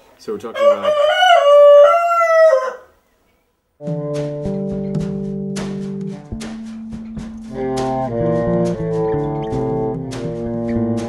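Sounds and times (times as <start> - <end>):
rooster crowing: 0.6 - 3.0
music: 3.8 - 11.0.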